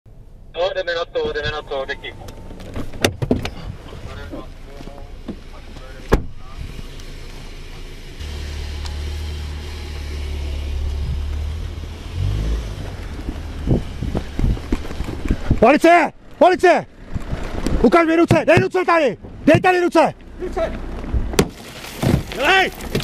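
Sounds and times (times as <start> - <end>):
car door opening: 2.2 - 4.5, 6.1 - 6.4
low rumble: 8.2 - 17.8.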